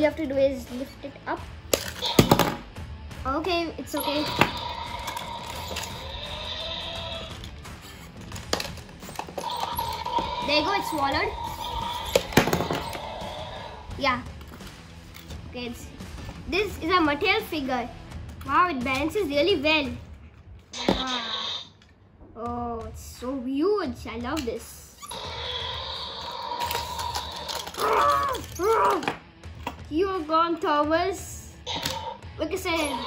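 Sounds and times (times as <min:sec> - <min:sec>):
electronic toy roar: 0:03.9 - 0:07.5, 0:09.2 - 0:14.0, 0:25.1 - 0:28.7, 0:31.7 - 0:33.0
plastic rattle: 0:08.2 - 0:10.1, 0:26.6 - 0:29.1
plastic toy clacks: 0:26.6 - 0:29.2.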